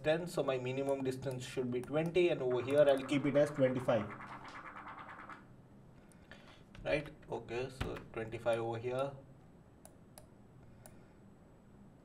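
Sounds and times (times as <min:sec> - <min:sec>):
faint room noise: 0:00.0 - 0:12.0.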